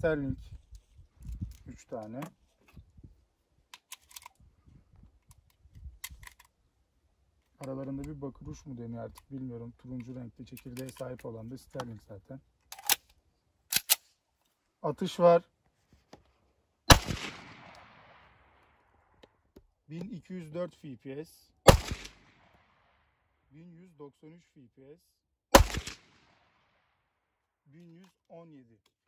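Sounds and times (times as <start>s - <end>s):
pistol slide racking clicks: 3.7s - 4.4s, 5.2s - 6.5s, 12.6s - 14.1s
pistol shot with echo: 16.9s - 18.4s, 21.7s - 22.8s, 25.5s - 26.6s.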